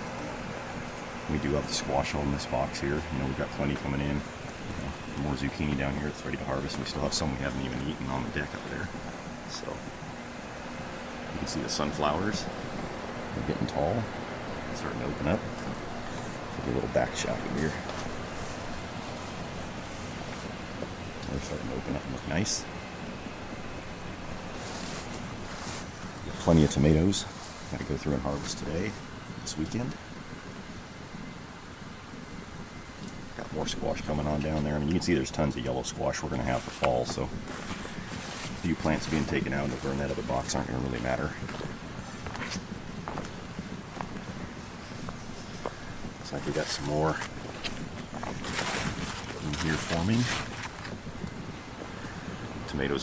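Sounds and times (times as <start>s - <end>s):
wind rumbling on microphone: 0.0s - 53.0s
soft rustles: 1.7s - 22.6s, 23.9s - 30.8s, 32.2s - 53.0s
wind on microphone: 35.2s - 53.0s.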